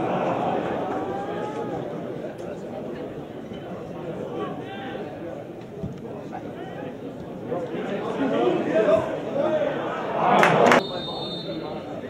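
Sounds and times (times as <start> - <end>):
crowd shouting: 0.0 - 2.2, 6.4 - 12.0
spectators chattering: 0.0 - 12.0.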